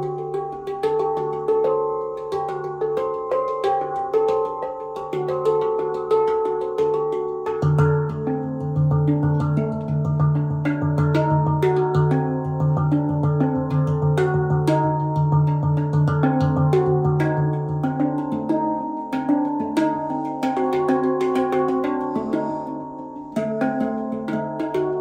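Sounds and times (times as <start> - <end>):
handpan played by hand: 0.0 - 25.0.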